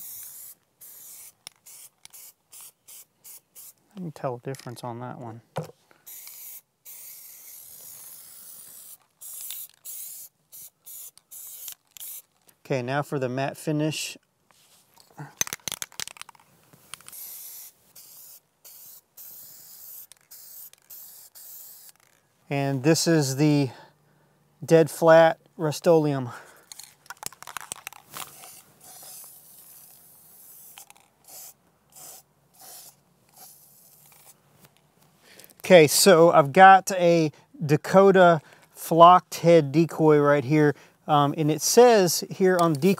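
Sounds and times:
aerosol spray can hissing: 0.0s - 3.8s, 6.1s - 12.3s, 17.0s - 22.1s, 28.2s - 34.3s.

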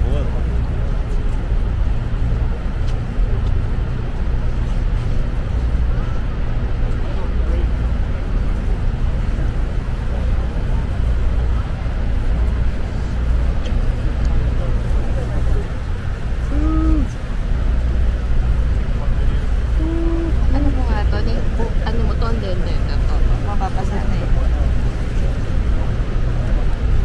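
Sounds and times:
boat engine rumble: 0.0s - 27.0s
faint passenger voices: 0.0s - 27.0s
wind: 0.0s - 27.0s.

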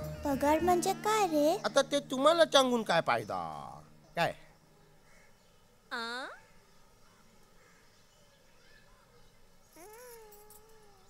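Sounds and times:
baby crying: 9.8s - 11.0s.

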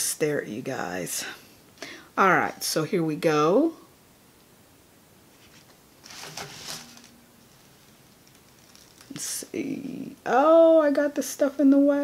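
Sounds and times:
soft rustling: 5.2s - 9.5s.

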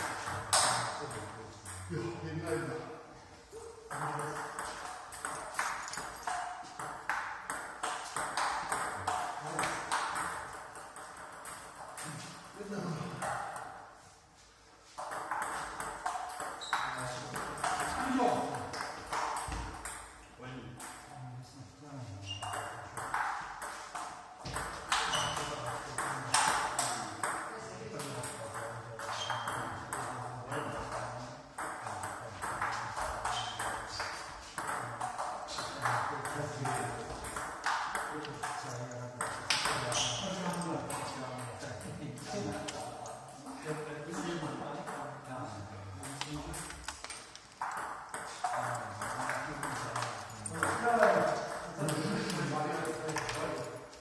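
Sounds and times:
table tennis balls clicking: 3.9s - 12.5s, 46.1s - 54.0s.

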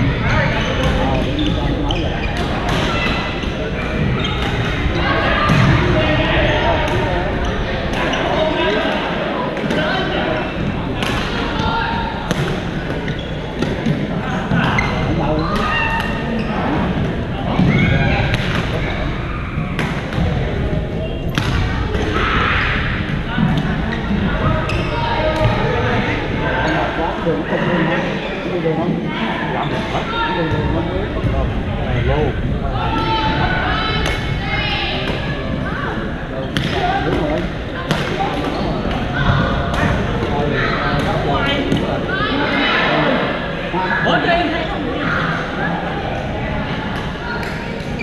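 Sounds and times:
chatter of voices: 0.0s - 48.0s
many people talking: 0.0s - 48.0s.

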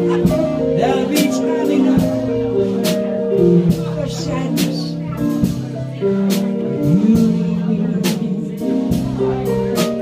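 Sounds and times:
keyboard chords: 0.0s - 10.0s
live band playing country ballad: 0.0s - 10.0s.

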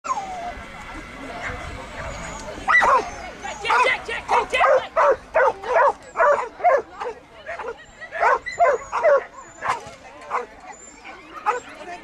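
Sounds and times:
faint voices: 0.1s - 12.0s.

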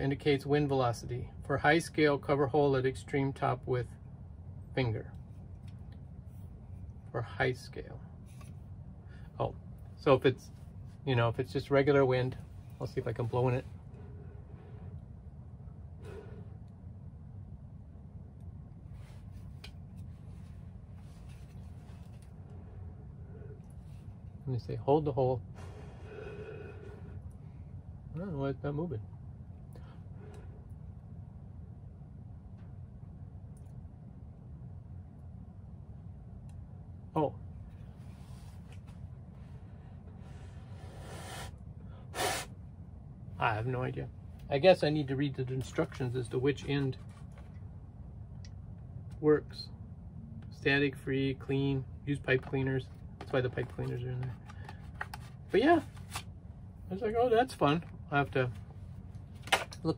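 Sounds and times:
low steady hum: 0.0s - 59.9s
person blowing into a tube: 42.1s - 42.5s.

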